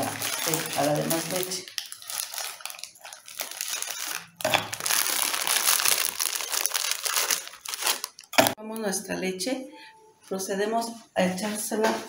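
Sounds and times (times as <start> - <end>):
plastic packet crinkling: 0.0 - 8.9.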